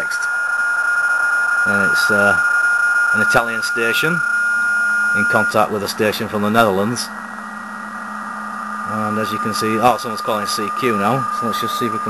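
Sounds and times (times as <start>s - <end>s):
faint digital signal tones: 0.0s - 12.0s
radio band hiss: 0.0s - 12.0s.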